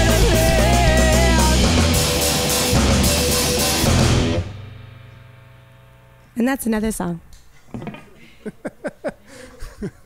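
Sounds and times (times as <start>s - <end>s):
live rock band playing: 0.0s - 5.0s.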